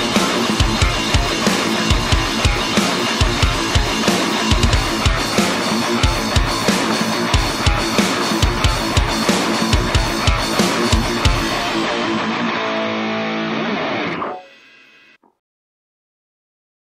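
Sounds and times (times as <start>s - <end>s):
fast kick drum: 0.0s - 11.8s
distorted electric guitar riff: 0.0s - 15.2s.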